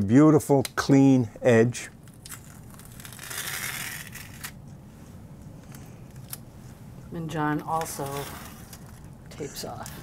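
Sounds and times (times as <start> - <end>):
tape peeling off plastic: 2.1 - 4.6.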